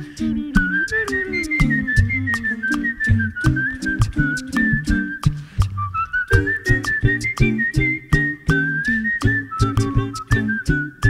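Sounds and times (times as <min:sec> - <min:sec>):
mouth percussion clicks: 0:00.0 - 0:11.0
person singing bass line: 0:00.0 - 0:11.0
whistled melody: 0:00.0 - 0:11.0.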